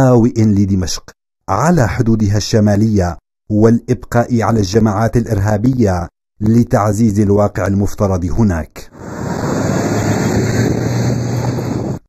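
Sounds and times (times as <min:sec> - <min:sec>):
wind on microphone: 0:08.9 - 0:12.0
truck engines driving past: 0:09.0 - 0:12.0.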